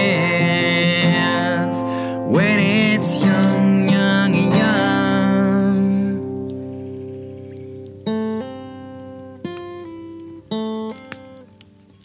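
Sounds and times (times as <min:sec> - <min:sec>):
acoustic guitar chord ringing: 0:00.0 - 0:11.5.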